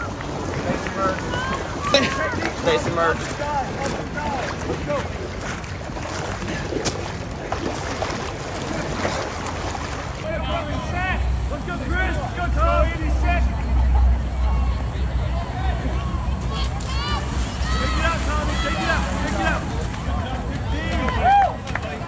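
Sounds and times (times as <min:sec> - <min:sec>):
distant shouting voices: 0:00.0 - 0:06.2, 0:10.1 - 0:21.8
wind buffeting microphone: 0:00.0 - 0:10.3
water splashing and sloshing: 0:00.0 - 0:11.8, 0:16.3 - 0:22.0.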